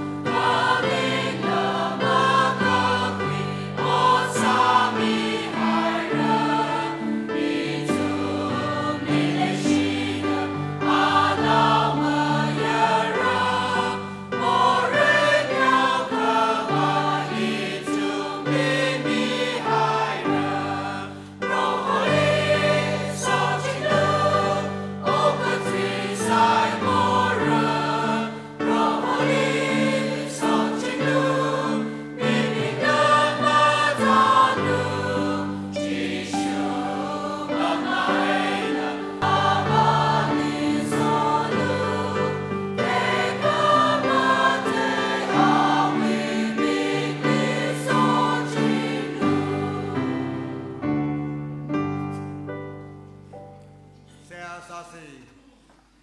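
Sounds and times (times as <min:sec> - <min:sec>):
congregation singing a hymn: 0:00.0 - 0:53.5.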